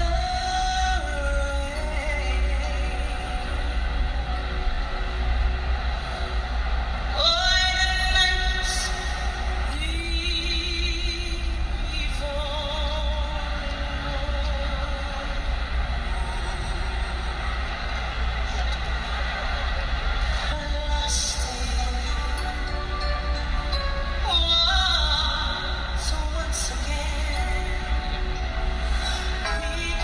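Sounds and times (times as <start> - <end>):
woman singing a slow ballad: 0.0 - 4.2, 7.1 - 15.5, 20.5 - 30.0.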